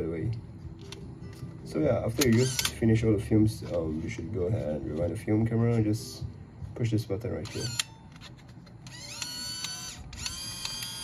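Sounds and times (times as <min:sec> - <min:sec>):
camera motor rewinding film: 0:02.2 - 0:02.8, 0:07.5 - 0:11.0.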